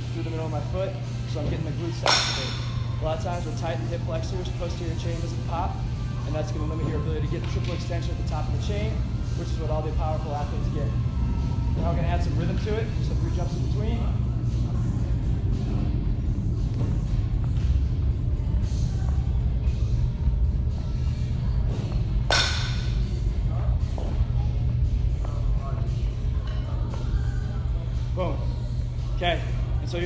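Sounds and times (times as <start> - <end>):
background music: 0.0 - 30.0
low hum of indoor hall: 0.0 - 30.0.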